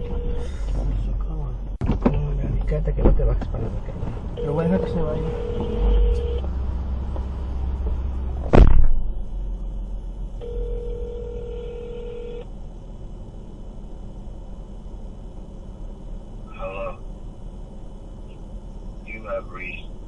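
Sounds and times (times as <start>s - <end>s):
telephone ringback tone: 0.0s - 0.5s, 4.4s - 6.4s, 10.4s - 12.4s
low steady rumble: 0.0s - 20.0s
loud thump: 1.8s - 2.2s, 7.8s - 9.3s.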